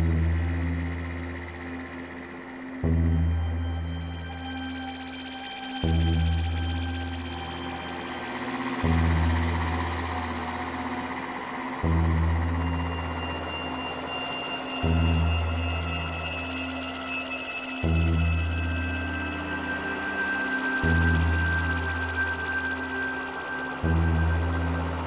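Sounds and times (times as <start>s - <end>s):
sustained synth pad tones: 0.0s - 25.0s
thin high held tone: 3.4s - 25.0s.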